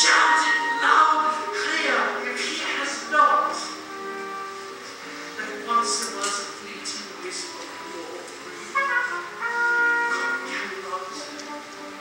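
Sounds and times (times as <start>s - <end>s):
man singing: 0.0s - 3.8s, 5.3s - 12.0s
pit orchestra accompaniment: 0.0s - 12.0s.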